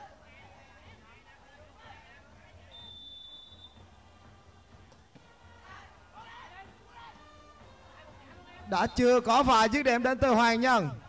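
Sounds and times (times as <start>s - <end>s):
referee's whistle: 2.7s - 3.9s, 8.8s - 9.4s.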